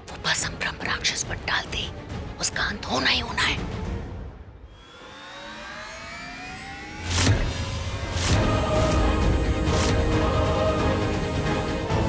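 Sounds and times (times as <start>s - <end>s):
dramatic score music: 0.0s - 12.0s
rising dramatic tone: 3.9s - 12.0s.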